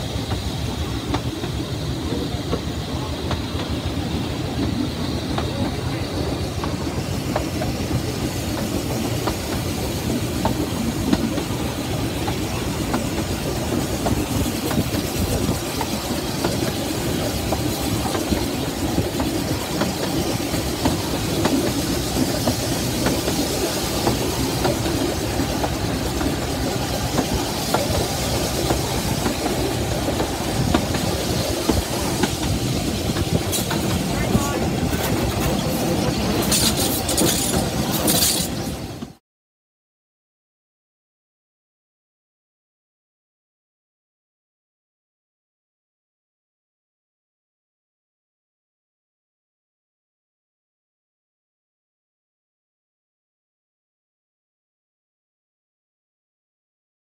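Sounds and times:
train wheels rumbling on track: 0.0 - 39.2
rail joint clicks and knocks: 0.1 - 39.2.

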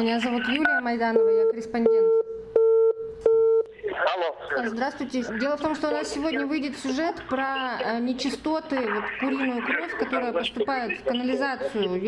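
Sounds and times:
telephone busy signal beeps: 0.6 - 3.7.

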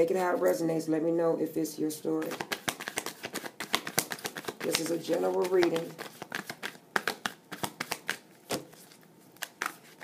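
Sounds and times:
cards being shuffled: 2.2 - 10.0.

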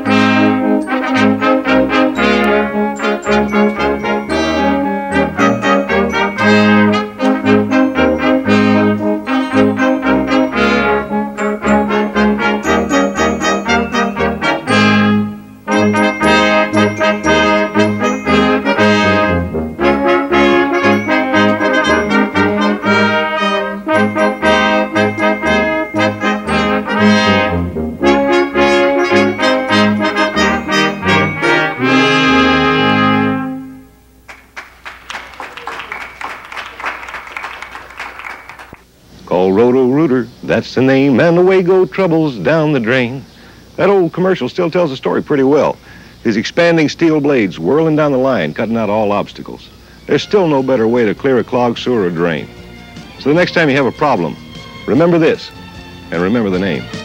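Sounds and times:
brass choir playing: 0.0 - 34.0.

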